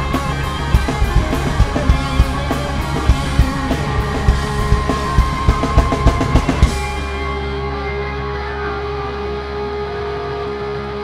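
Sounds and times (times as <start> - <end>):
live rock band playing: 0.0 - 11.0
steady held note: 0.0 - 11.0.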